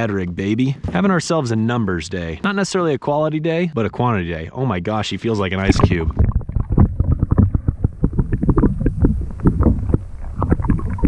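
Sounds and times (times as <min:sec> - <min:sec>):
muffled underwater sloshing: 0:05.5 - 0:11.0.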